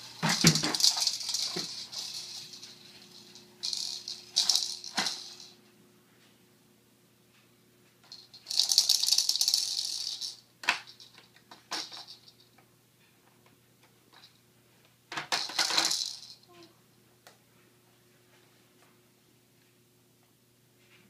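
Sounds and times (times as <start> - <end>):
toy beads rattling: 0.0 - 5.6, 8.1 - 12.5, 15.3 - 16.6.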